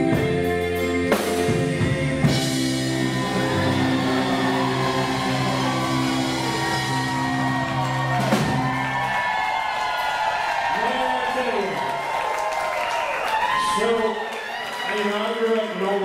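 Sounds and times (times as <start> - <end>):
person singing: 0.0 - 8.1
live band playing: 0.0 - 10.7
drum hit: 1.4 - 9.0
audience cheering: 2.5 - 16.0.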